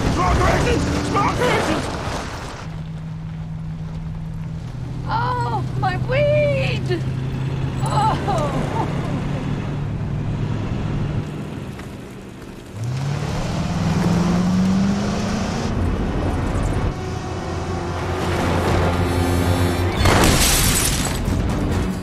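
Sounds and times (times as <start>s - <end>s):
tyres spinning on dirt: 0.0s - 10.1s
car engine revving: 0.0s - 12.0s, 12.6s - 22.0s.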